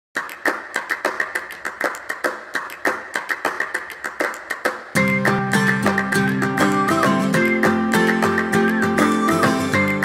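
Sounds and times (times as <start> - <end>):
small audience applauding: 0.2 - 10.0.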